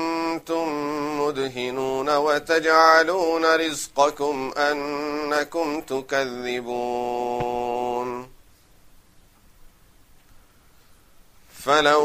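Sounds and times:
man chanting melodically: 0:00.0 - 0:08.4, 0:11.6 - 0:12.0.

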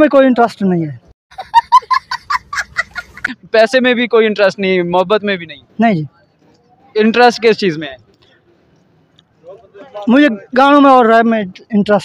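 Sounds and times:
young child laughing: 0:01.4 - 0:03.4.

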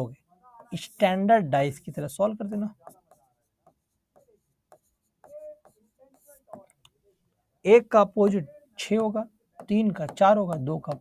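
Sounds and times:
stylus writing on screen: 0:00.0 - 0:11.0.

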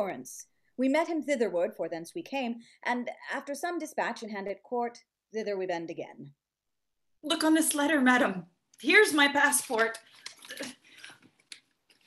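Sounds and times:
paper crinkling: 0:08.8 - 0:12.0.

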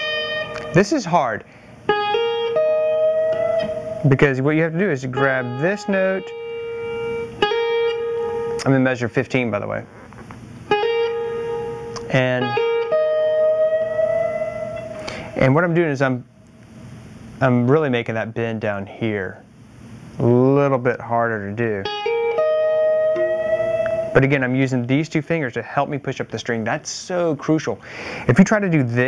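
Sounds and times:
guitar string bend: 0:00.0 - 0:15.8, 0:21.7 - 0:25.0.

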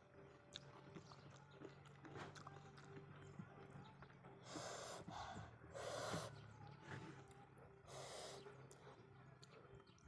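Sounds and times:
noisy mouth breaths while eating: 0:04.4 - 0:09.2.

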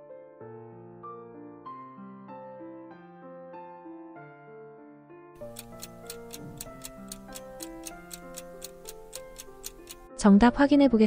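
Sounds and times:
soft background music: 0:00.0 - 0:11.0
clock ticking: 0:05.4 - 0:10.1.

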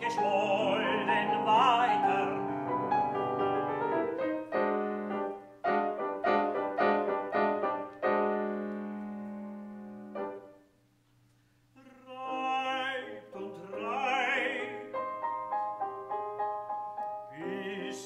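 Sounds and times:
man singing with vibrato: 0:00.0 - 0:03.1, 0:11.8 - 0:15.3, 0:17.3 - 0:18.0
grand piano chords: 0:00.0 - 0:10.7, 0:12.1 - 0:18.0.

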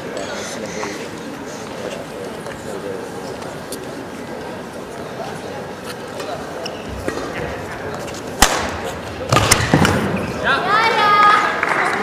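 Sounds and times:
murmuring voices: 0:00.0 - 0:12.0.

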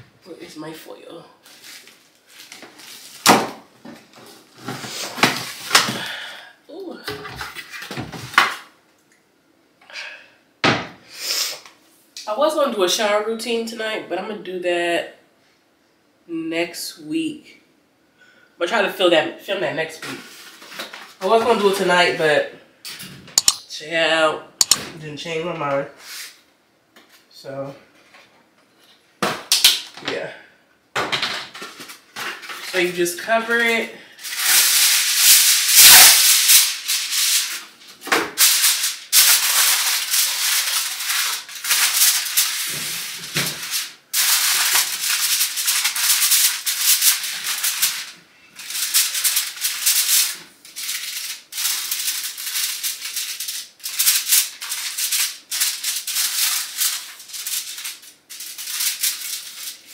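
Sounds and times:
aluminum foil crinkling: 0:01.4 - 0:03.3, 0:31.6 - 0:59.9
cabinet doors opening and shutting: 0:10.6 - 0:11.0.

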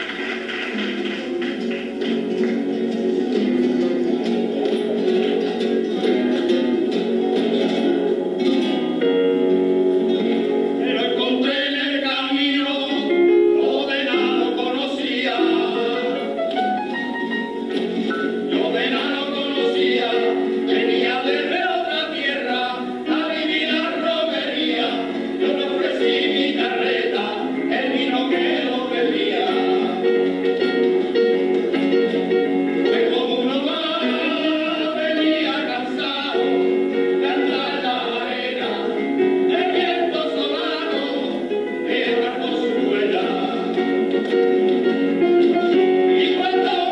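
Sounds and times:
hand clapping: 0:00.0 - 0:07.9, 0:43.7 - 0:45.8
strummed guitars: 0:00.0 - 0:46.9
men singing together: 0:10.8 - 0:16.4, 0:18.2 - 0:30.5, 0:32.8 - 0:44.4, 0:45.9 - 0:46.9.

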